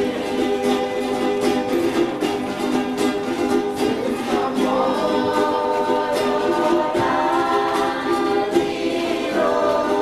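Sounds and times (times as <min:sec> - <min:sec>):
strummed strings: 0:00.0 - 0:10.0
voices singing together: 0:00.0 - 0:10.0.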